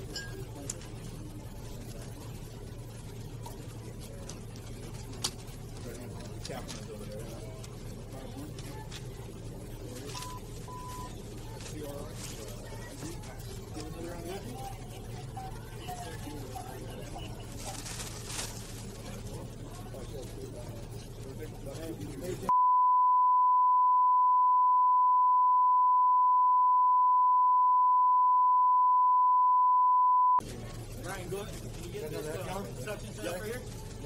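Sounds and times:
steady pure beep tone: 10.1s - 11.2s, 22.5s - 30.4s.

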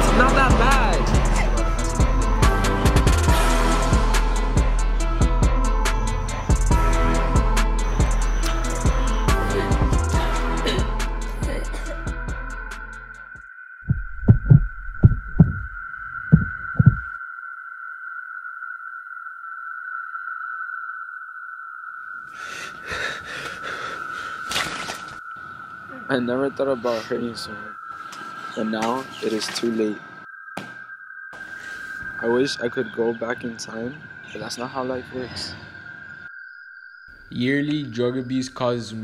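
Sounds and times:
steady high-pitched tone: 12.4s - 21.8s
heartbeat double beats: 13.8s - 17.1s
high-pitched electronic tone: 13.9s - 17.2s.

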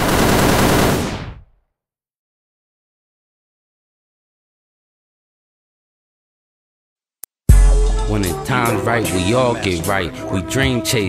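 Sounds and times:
automatic gunfire: 0.0s - 1.3s.

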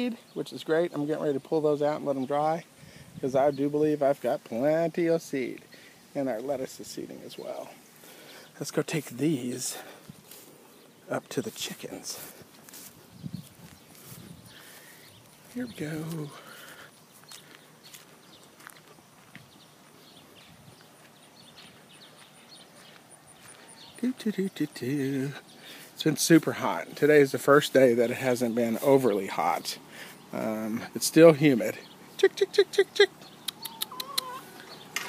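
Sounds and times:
footsteps on gravel: 9.0s - 24.6s
hen clucking: 32.2s - 35.0s
drawn-out hen call: 32.4s - 35.0s.

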